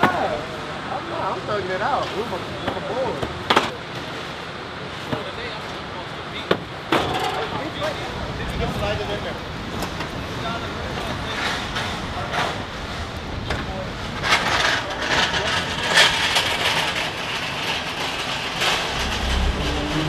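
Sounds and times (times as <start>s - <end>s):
clanks and rattles of pallets: 2.0s - 4.3s, 6.4s - 7.9s, 9.7s - 20.0s
steady machinery rumble: 14.0s - 20.0s
indistinct voices: 18.7s - 20.0s.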